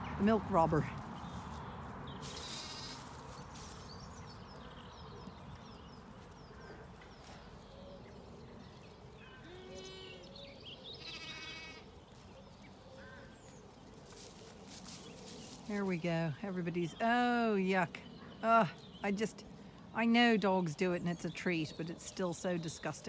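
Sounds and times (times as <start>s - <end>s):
sheep and lambs bleating: 2.4s - 3.2s, 9.3s - 10.3s, 10.9s - 12.0s.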